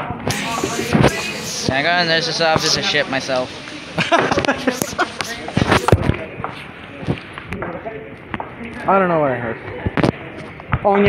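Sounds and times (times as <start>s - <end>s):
kids' voices: 0.3s - 6.0s
kids laughing: 2.6s - 6.0s.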